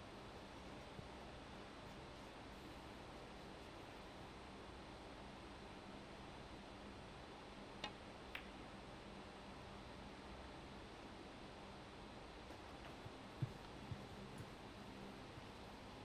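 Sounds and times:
quiet room hush: 0.0s - 16.0s.

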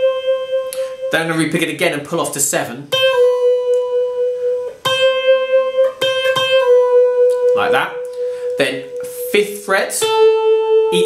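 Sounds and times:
electric guitar slow single notes: 0.0s - 1.4s, 2.9s - 11.0s.

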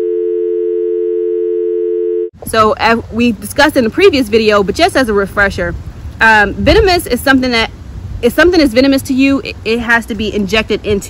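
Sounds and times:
steady two-pitch electronic tone: 0.0s - 2.3s.

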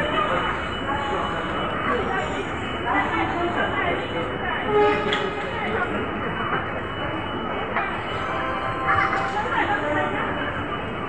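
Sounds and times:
crowd voices: 0.0s - 11.0s
train noise: 0.0s - 11.0s.

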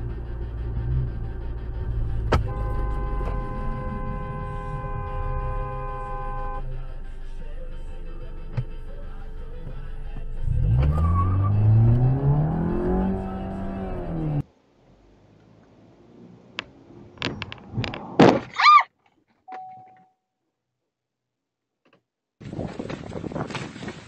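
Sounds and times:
vehicle engine revving: 0.0s - 7.0s, 8.4s - 14.4s
short tone: 19.5s - 20.2s.

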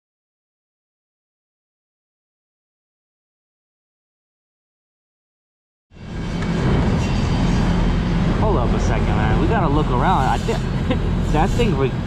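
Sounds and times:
machinery humming and rumbling: 5.9s - 12.0s.

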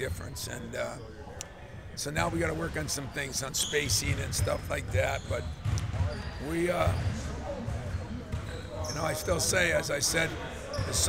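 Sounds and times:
basketballs dribbled on gym floor: 4.0s - 9.0s.

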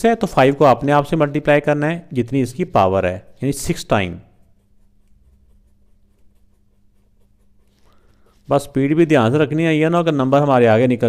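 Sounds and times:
pen scratching on paper: 3.9s - 9.1s.

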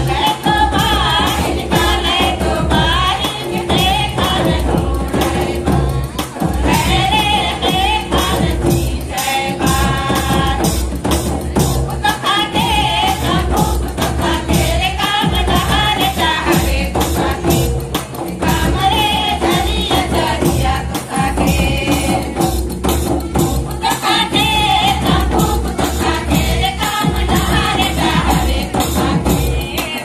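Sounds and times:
drum beats: 0.0s - 30.0s
music accompaniment: 0.0s - 30.0s
women singing in unison: 0.0s - 30.0s.

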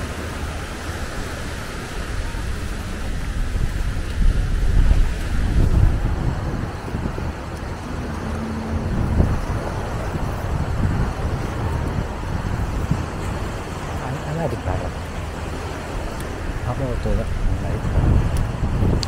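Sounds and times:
surf: 0.0s - 19.0s
wind buffeting microphone: 0.0s - 19.0s.

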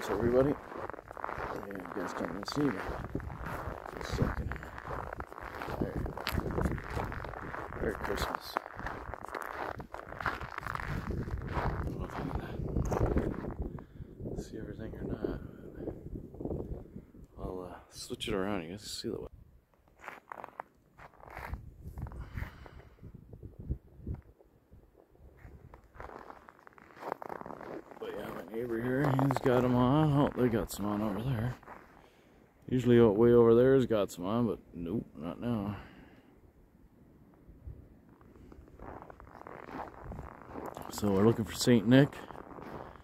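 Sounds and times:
footsteps crunching in snow: 0.0s - 13.7s, 19.9s - 22.8s, 25.4s - 32.0s, 38.1s - 43.0s.

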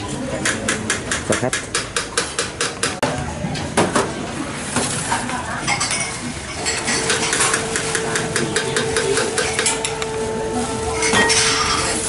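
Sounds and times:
utensils clattering: 4.8s - 12.0s
utensils clinking against bowls: 5.6s - 12.0s
steady hum: 6.5s - 12.0s.

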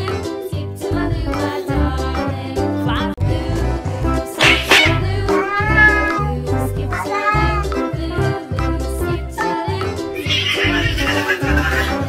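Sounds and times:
cat meowing: 4.4s - 7.8s, 10.2s - 12.0s.

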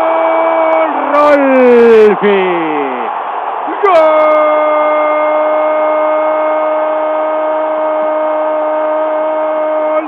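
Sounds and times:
stadium crowd noise: 0.0s - 10.0s
commentator shouting over radio: 0.4s - 2.9s.

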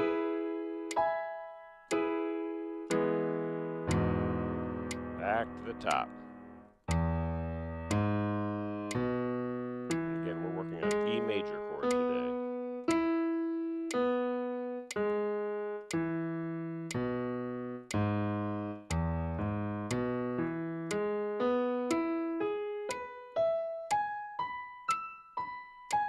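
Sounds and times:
piano chords ringing: 0.0s - 26.0s.

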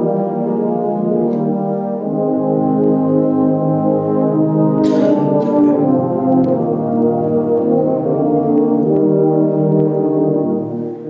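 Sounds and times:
low brass ensemble chords: 0.0s - 11.0s.

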